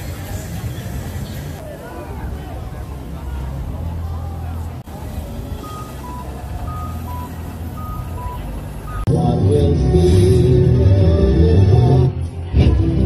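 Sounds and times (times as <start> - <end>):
crowd voices: 0.0 - 13.0
electronic two-tone beep: 5.6 - 9.1.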